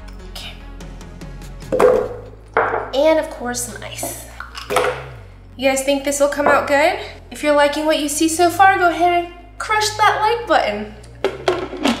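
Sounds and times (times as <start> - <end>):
background music: 0.0 - 12.0
frozen fruit thudding into blender jar: 11.2 - 12.0.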